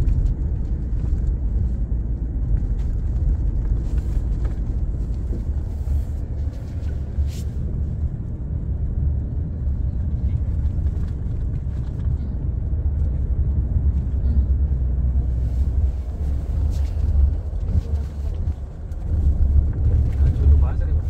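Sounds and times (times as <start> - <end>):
car cabin engine and road rumble: 0.0 - 21.0.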